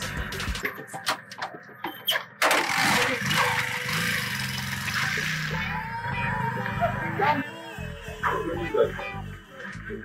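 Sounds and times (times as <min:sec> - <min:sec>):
motorcycle engine starting and running: 0:02.2 - 0:10.0.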